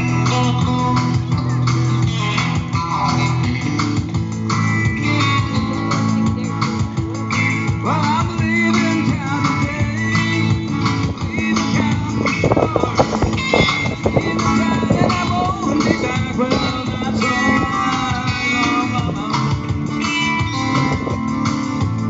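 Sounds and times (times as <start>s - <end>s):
acoustic guitars picked and strummed: 0.0s - 22.0s
electric bass guitar: 0.0s - 22.0s.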